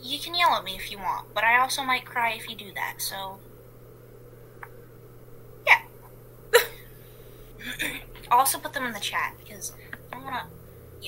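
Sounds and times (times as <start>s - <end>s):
person laughing: 7.6s - 8.2s.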